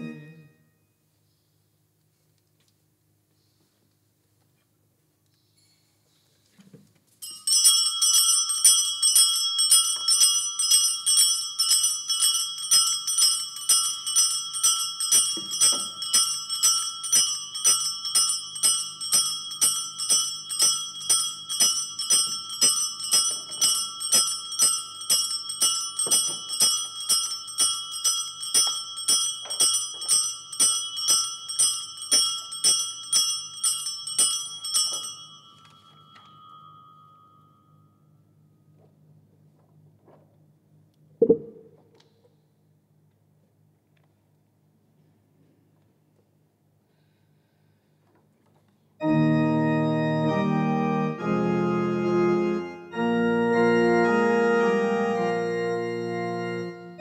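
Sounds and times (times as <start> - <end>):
small bells shaken: 7.2 - 38.0.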